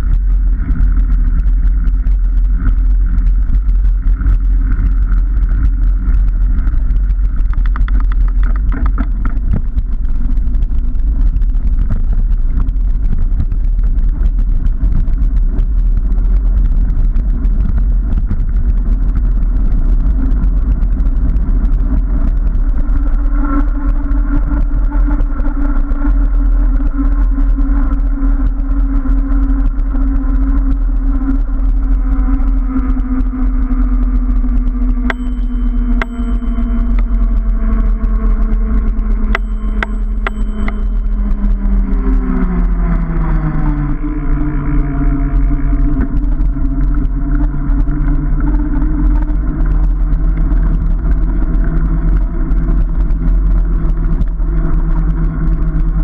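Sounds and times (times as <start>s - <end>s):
tyres rumbling on tarmac: 0.0s - 36.0s
steady humming tone: 0.0s - 56.0s
wind buffeting microphone: 0.0s - 56.0s.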